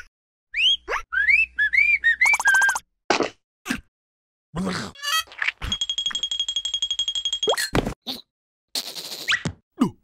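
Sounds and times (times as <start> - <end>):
cartoon character whistling tune: 0.5 - 2.8.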